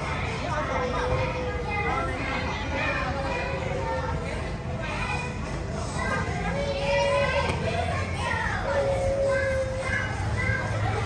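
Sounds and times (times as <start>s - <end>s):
young children chattering: 0.0s - 11.0s
child's drawn-out high call: 8.3s - 11.0s.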